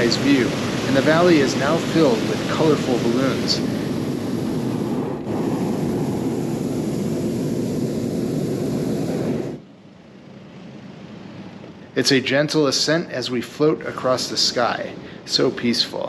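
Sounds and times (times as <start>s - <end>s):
propane burner roaring: 0.0s - 16.0s.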